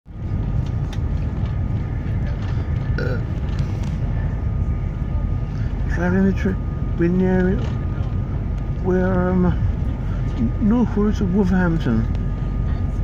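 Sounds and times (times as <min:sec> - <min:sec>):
faint steady whine: 0:00.1 - 0:13.0
train rumble: 0:00.1 - 0:13.0.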